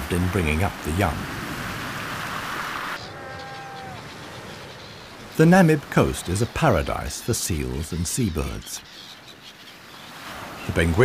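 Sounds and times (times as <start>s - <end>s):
surf washing over rocks: 0.0s - 7.9s
seals bleating: 3.0s - 8.8s.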